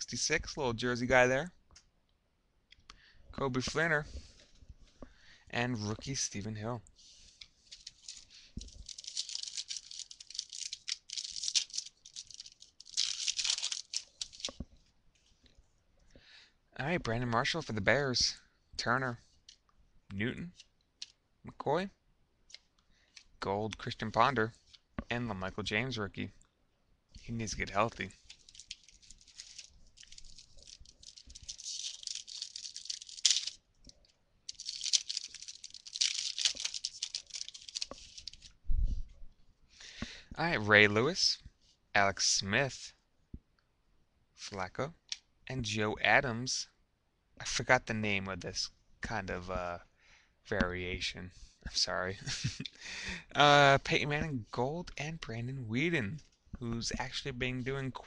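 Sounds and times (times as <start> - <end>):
wrapper crinkling and rustling: 7.6 - 14.6, 28.0 - 38.6.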